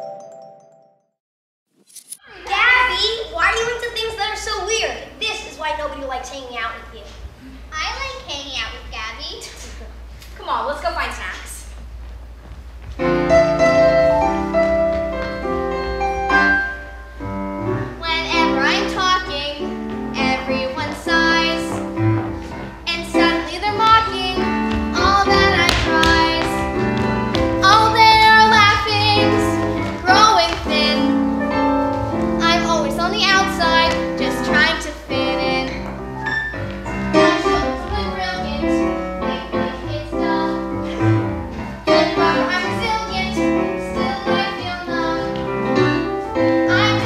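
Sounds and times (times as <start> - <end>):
piano accompaniment: 0.0 - 1.1, 12.8 - 47.0
child singing: 18.0 - 21.8, 22.9 - 26.6, 27.6 - 31.1, 32.4 - 35.8, 37.2 - 40.7, 41.9 - 45.4, 46.7 - 47.0.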